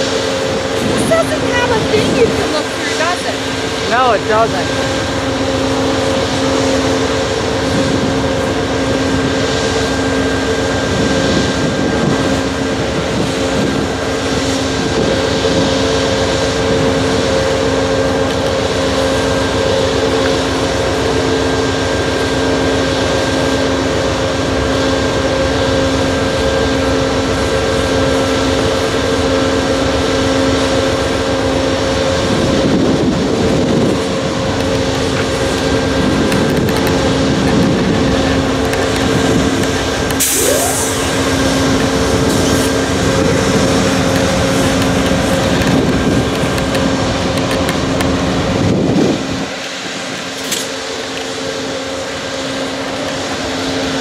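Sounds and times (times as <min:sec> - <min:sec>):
diesel locomotive idling drone: 0:00.0 - 0:54.0.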